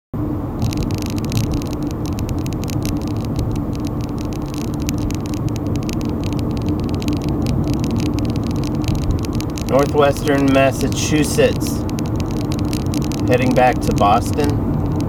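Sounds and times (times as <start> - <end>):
low engine hum: 0.2 - 15.0
rapid irregular crackle: 0.2 - 15.0
road and tyre noise: 0.2 - 15.0.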